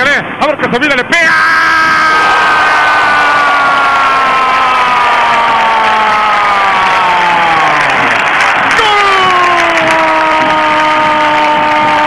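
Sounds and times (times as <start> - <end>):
stadium crowd cheering: 1.6 - 12.0.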